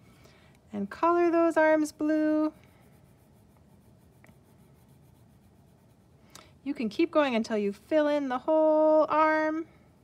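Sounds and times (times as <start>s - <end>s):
crayon scratching on paper: 1.7s - 6.1s.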